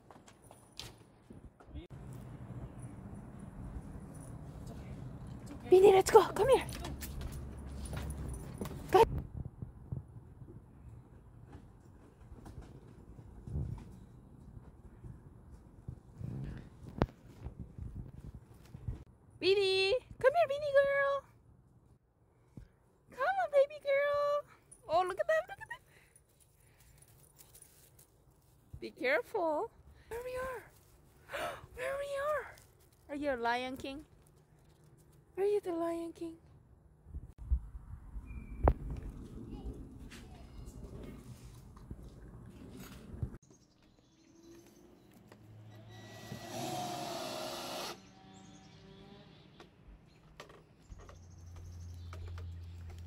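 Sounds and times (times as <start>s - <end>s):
power drill driving a screw: 45.7s - 48.1s.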